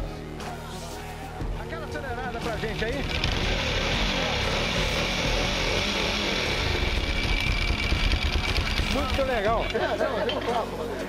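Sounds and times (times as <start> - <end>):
motorcycle engine revving: 2.3 - 9.8.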